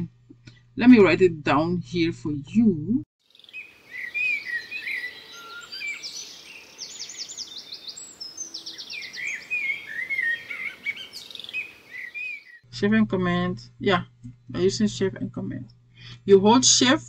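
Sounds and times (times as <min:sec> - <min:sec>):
songbirds chirping: 0:03.2 - 0:12.7.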